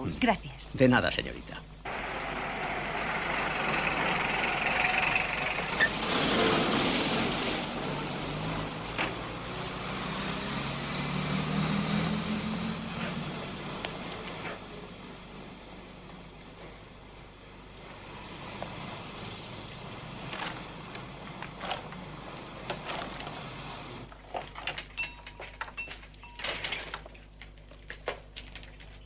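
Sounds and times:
street traffic: 1.8s - 24.1s
taxi engine running: 1.8s - 24.1s.

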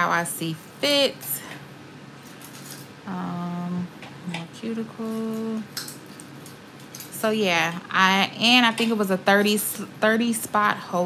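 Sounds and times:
woman humming: 3.1s - 4.4s.

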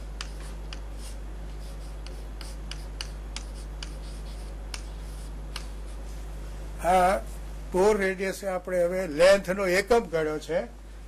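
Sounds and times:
chalk tapping and scratching: 0.0s - 6.2s
steady low hum: 0.0s - 11.0s.

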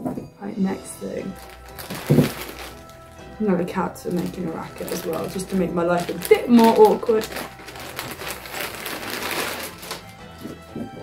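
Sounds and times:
background music with held notes: 0.0s - 11.0s
plastic bag crinkling: 0.8s - 10.6s.

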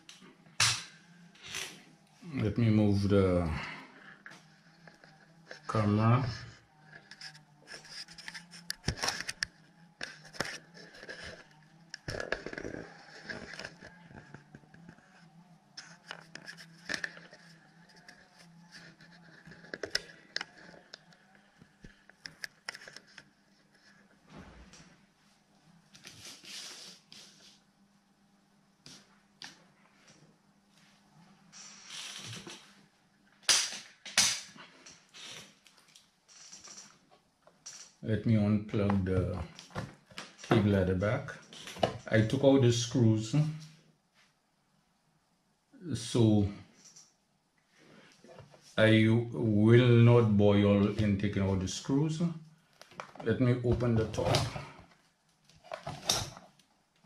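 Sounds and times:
faint low hum: 0.0s - 57.0s.

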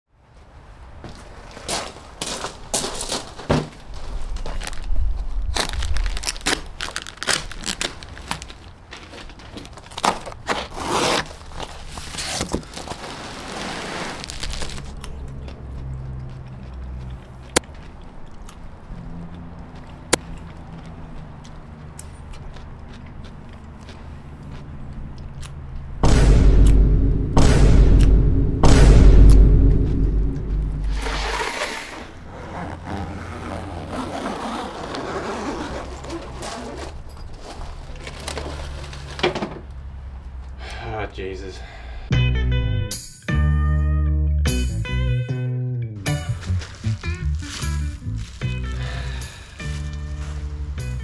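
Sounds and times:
plastic wrap crinkling: 3.9s - 15.0s, 46.3s - 50.6s
cardboard box being opened: 9.2s - 14.9s.

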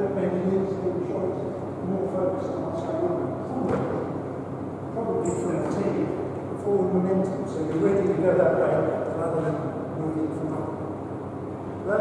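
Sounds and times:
men's voices talking: 0.0s - 10.9s.

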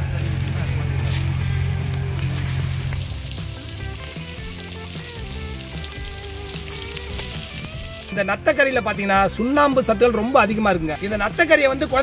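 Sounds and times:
music: 0.0s - 12.0s
food sizzling in oil: 1.0s - 8.3s.

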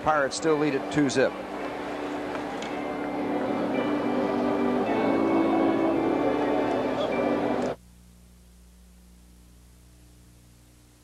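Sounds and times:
music of long held notes: 0.0s - 7.8s
faint hum: 0.0s - 11.0s
crowd murmur: 0.2s - 7.8s.

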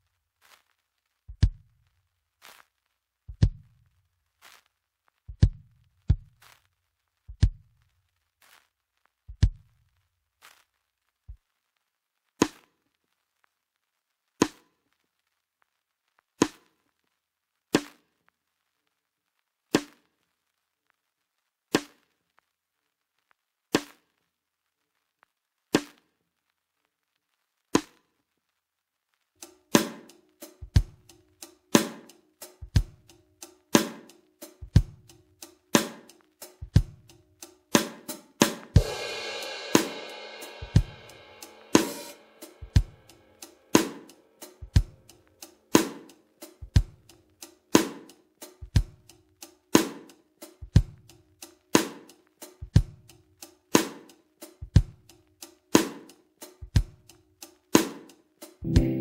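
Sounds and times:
kick drum and snare strikes: 1.3s - 1.8s, 3.3s - 3.8s, 5.3s - 6.6s, 7.3s - 7.8s, 9.3s - 9.8s, 29.7s - 51.2s, 51.8s - 53.2s, 53.8s - 57.1s
hi-hat strokes: 29.4s - 59.0s
crash cymbal ringing: 38.8s - 44.6s.

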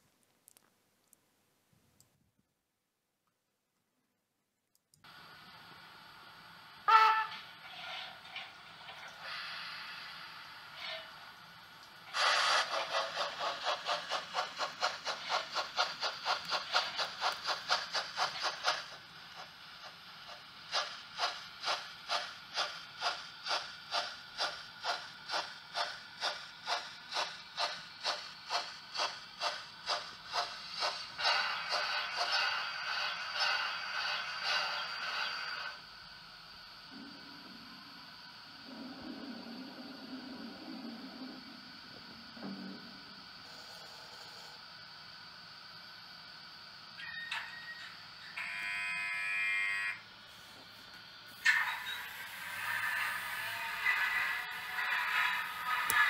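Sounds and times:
steam hissing: 5.1s - 48.4s, 49.3s - 56.0s
locomotive chuffing: 5.5s - 43.8s, 50.0s - 56.0s
steam locomotive whistle: 6.8s - 7.6s, 47.0s - 50.1s, 51.4s - 56.0s.

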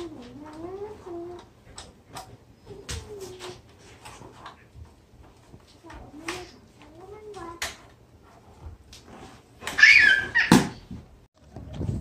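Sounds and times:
child squealing: 9.7s - 10.8s.

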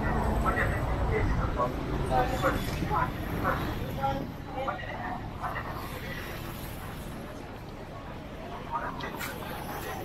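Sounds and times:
people's voices: 0.0s - 10.0s
street traffic rumble: 0.0s - 10.0s.

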